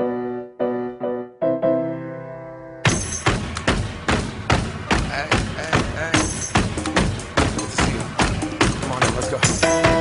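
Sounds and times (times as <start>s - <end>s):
hip-hop music with drum beat: 2.9s - 10.0s.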